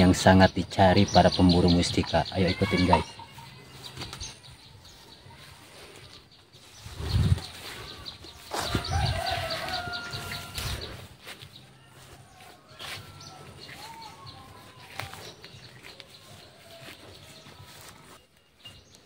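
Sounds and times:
rooster crowing: 8.5 - 11.0, 16.3 - 17.8.

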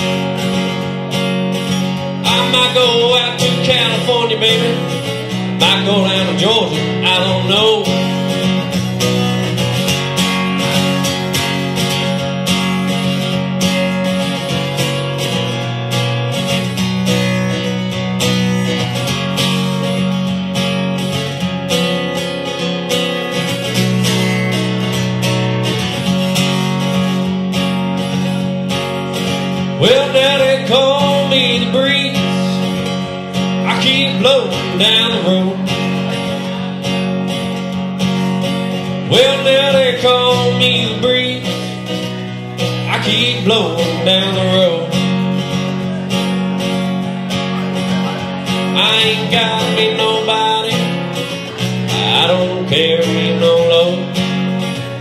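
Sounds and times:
acoustic guitar strumming and picking: 0.0 - 55.0
person singing: 2.1 - 8.4, 29.7 - 36.6, 38.9 - 46.8, 47.4 - 54.9.

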